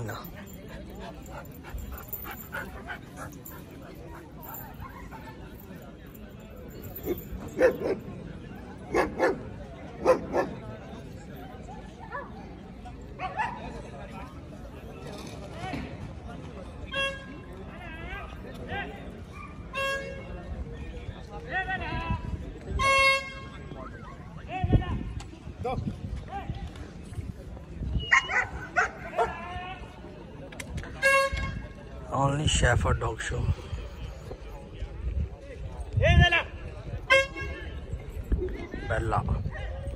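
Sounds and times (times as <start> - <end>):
crowd murmur: 0.0 - 39.9
dog barking: 10.0 - 10.5.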